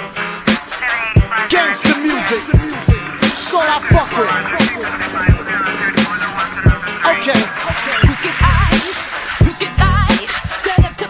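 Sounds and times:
rapping over a beat: 0.5 - 11.0.

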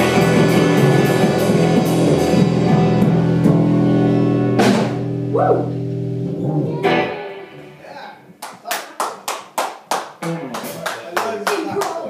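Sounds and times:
group clapping: 8.4 - 12.0.

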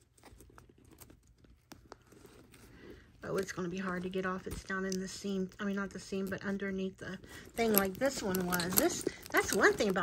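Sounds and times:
fingernail picking at plastic film: 7.4 - 10.0.

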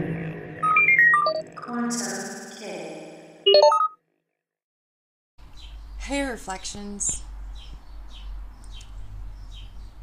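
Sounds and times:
sustained synth tone: 0.0 - 2.6
short electronic beeping tones: 0.6 - 1.7, 3.4 - 4.0.

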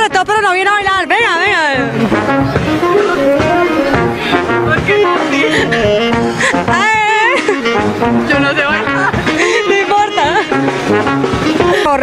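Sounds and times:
brass band playing latin tune: 1.0 - 12.0
drum kit: 1.4 - 12.0
person singing: 4.7 - 7.6.

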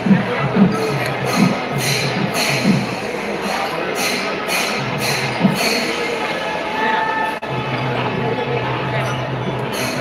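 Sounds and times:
loud drum strokes: 0.0 - 6.4
crowd: 0.0 - 10.0.

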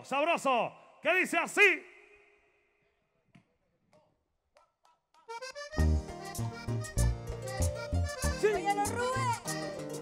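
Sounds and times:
accordion notes stepping upward: 5.3 - 10.0
full band with bass: 5.8 - 10.0.

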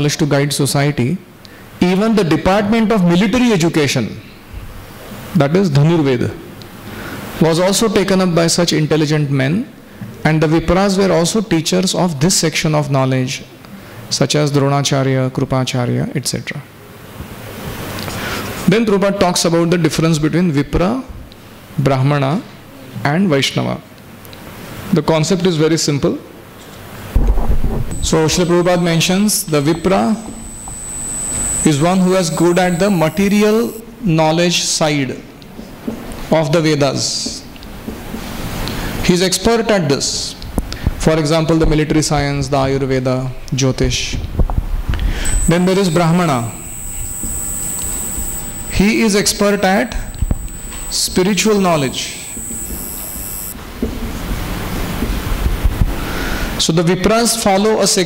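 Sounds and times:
steady hiss: 27.9 - 33.8, 45.2 - 53.6.

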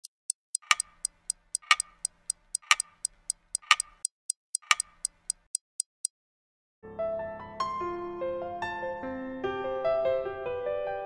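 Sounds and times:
clock ticking: 0.0 - 6.1.

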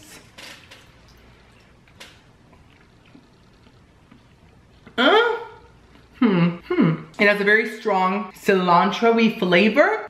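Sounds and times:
eating soup: 0.6 - 5.0.

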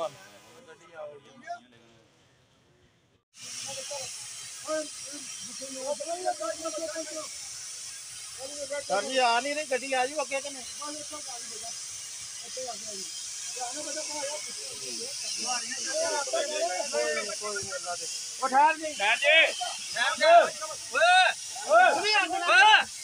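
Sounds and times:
cutting torch hissing: 3.4 - 23.0
loud men's voices: 13.6 - 23.0.

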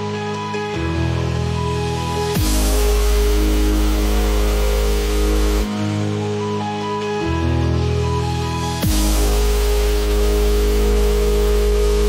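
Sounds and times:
deep sub-bass note: 8.8 - 12.0.

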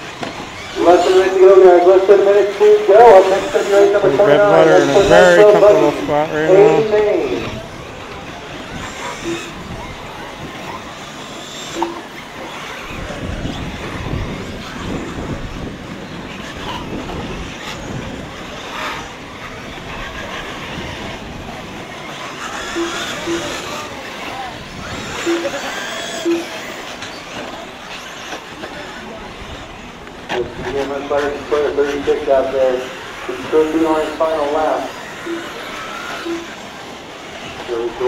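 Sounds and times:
rc cars motor and tyre noise: 0.0 - 38.0
short beeps: 9.2 - 9.6, 11.8 - 12.1, 22.7 - 23.7, 25.2 - 26.7, 35.2 - 36.7.

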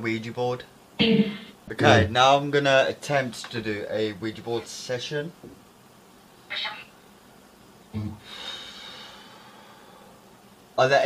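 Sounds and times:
breath hissing out: 8.2 - 10.1.

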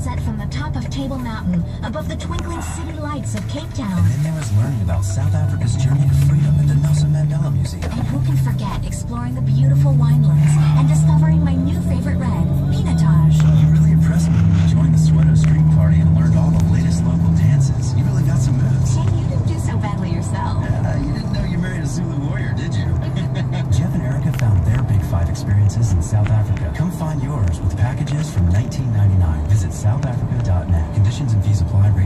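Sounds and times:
car engine and road noise: 0.0 - 32.0
commercial music on car radio: 0.0 - 32.0.

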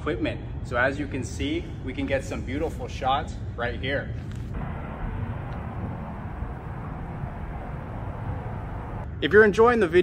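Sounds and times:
distant traffic rumble and hiss: 0.0 - 10.0.

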